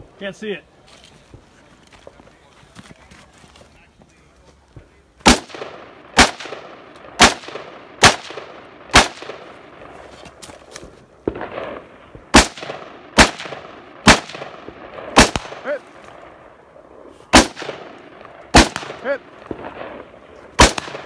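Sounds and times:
rifle shots with echo: 5.2 - 10.0, 11.2 - 21.0.

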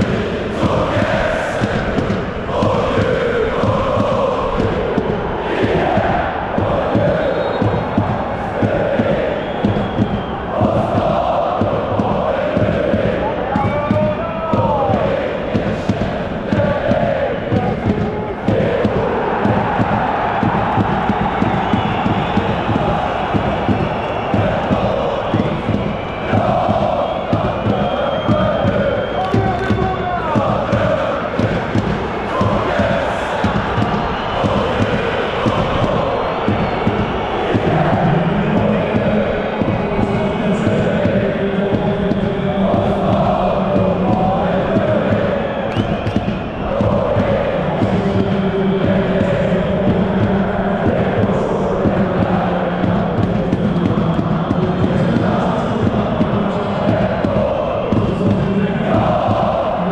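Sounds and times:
crowd chanting: 0.0 - 59.9.

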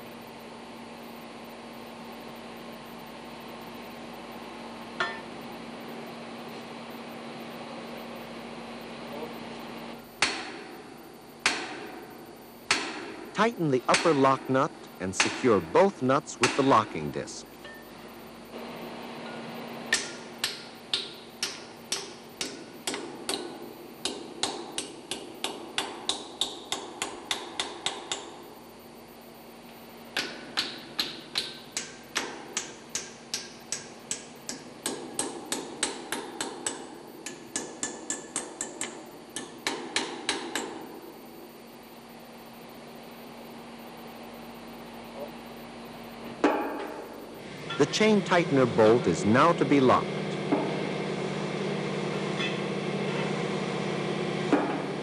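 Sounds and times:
hammer tapping metal: 5.0 - 5.3, 13.9 - 14.4, 15.2 - 16.9, 19.3 - 28.4, 30.2 - 40.9, 46.4 - 47.1, 52.4 - 53.2.

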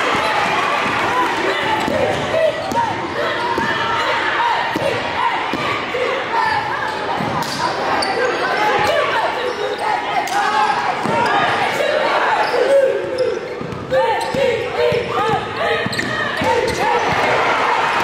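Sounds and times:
crowd chatter and shouting: 0.0 - 18.0.

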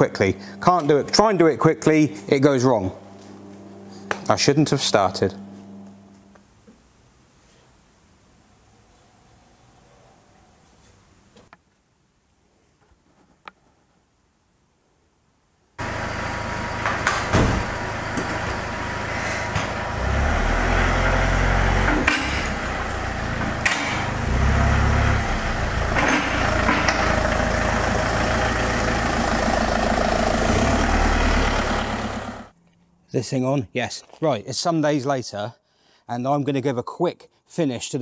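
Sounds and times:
car engine revving: 15.8 - 32.5.

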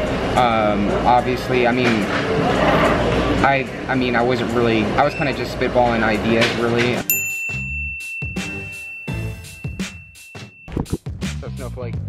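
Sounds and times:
bright ding ringing: 7.0 - 10.8
background music with beat and bass: 7.5 - 12.0.

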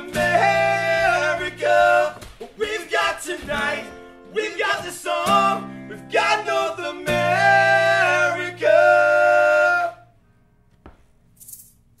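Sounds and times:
acoustic guitar chord ringing: 0.0 - 1.6
men singing: 0.0 - 10.1.

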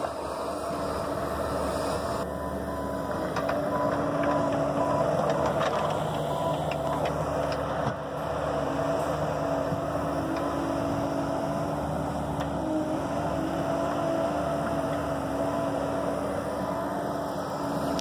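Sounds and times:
excavator diesel engine and hydraulics: 0.0 - 18.0.

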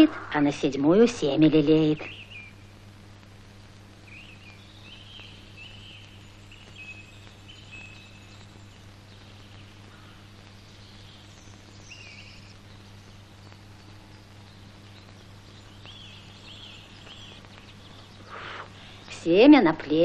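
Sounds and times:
birds chirping: 0.0 - 20.0
steady low hum: 0.0 - 20.0.

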